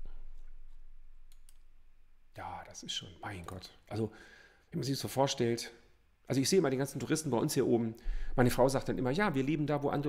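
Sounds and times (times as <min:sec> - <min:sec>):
computer mouse clicking: 0:01.3 - 0:01.7.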